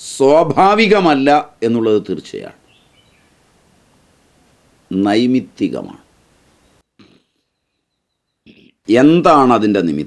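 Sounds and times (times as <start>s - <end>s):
man speaking: 0.0s - 2.6s, 4.9s - 6.0s, 8.5s - 10.0s
faint mouth sounds: 7.0s - 7.4s, 8.4s - 8.9s.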